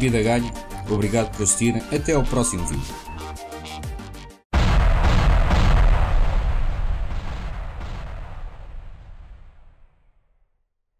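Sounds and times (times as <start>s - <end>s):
cinematic boom rumble: 4.6s - 9.9s.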